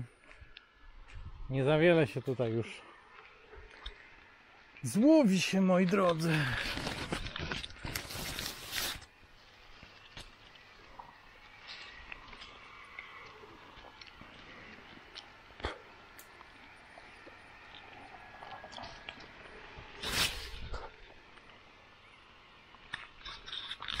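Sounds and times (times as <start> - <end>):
leaves and twigs rustling: 2.8 - 21.6.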